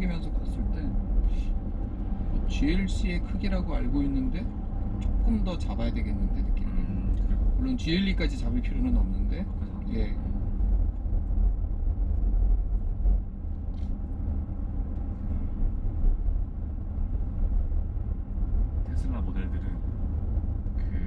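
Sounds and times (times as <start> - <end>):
road and tyre rumble in car: 0.0 - 21.0.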